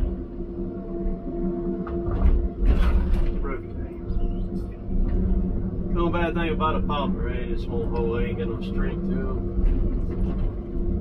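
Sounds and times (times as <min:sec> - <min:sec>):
deep low rumbling surges: 0:00.0 - 0:11.0
diesel engine under heavy load: 0:00.0 - 0:11.0.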